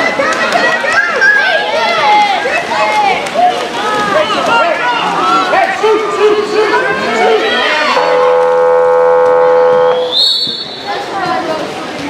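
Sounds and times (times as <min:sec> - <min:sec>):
loud timing horn blast: 0:08.0 - 0:10.1.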